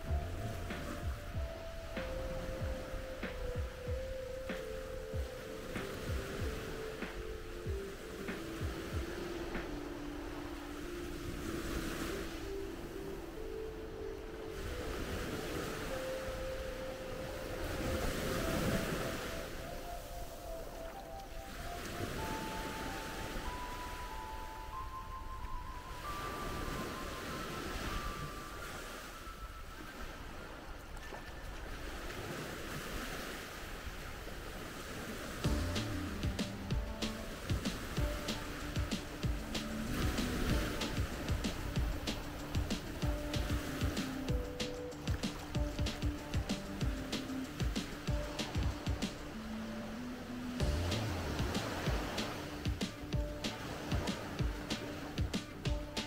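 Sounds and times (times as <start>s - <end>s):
slow melody of held notes: 0.0s - 31.8s, 35.4s - 56.0s
small waves washing onto beach: 0.0s - 56.0s.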